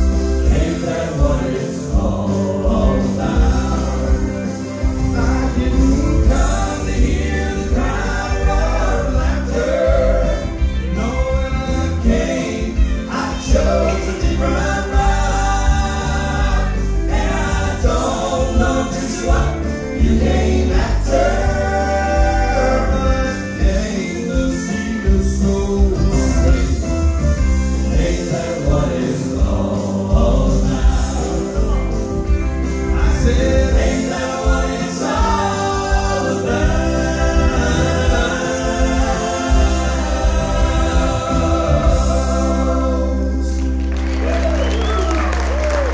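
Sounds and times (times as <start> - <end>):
men singing in harmony: 0.0 - 43.8
instrumental accompaniment with bass: 0.0 - 45.9.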